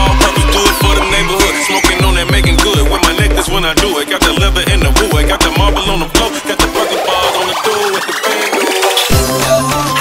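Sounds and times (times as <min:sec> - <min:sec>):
electronic music kick and bass: 0:00.0 - 0:10.0.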